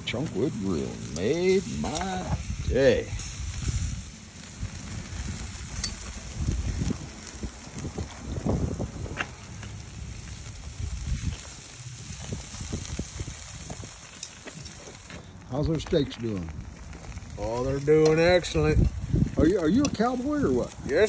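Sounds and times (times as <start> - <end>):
faint fire crackles: 0.0 - 21.0
steaks sizzling on grill: 0.0 - 21.0
wind rumble on microphone: 0.2 - 15.1, 16.4 - 21.0.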